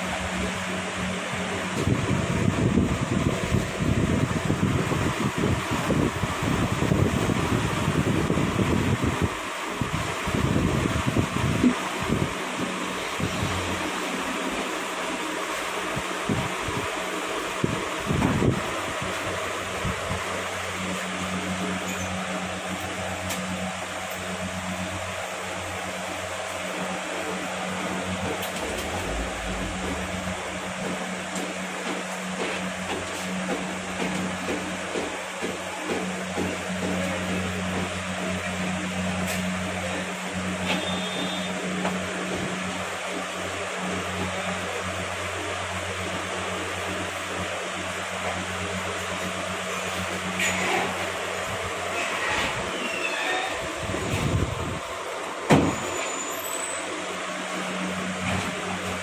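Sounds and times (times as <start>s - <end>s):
mechanical fan hum: 0.0s - 59.0s
low rumbling noise: 24.7s - 33.0s.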